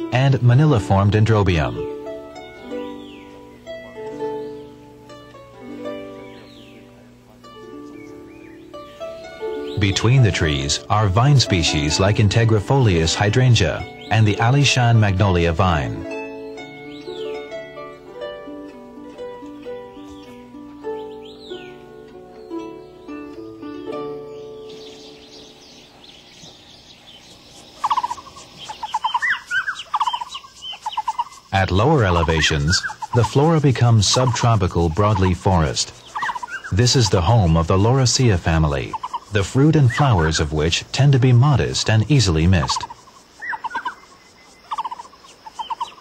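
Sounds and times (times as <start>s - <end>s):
plucked-string music: 0.0s - 43.4s
magpie harsh rapid calls: 27.7s - 40.4s, 42.3s - 46.0s.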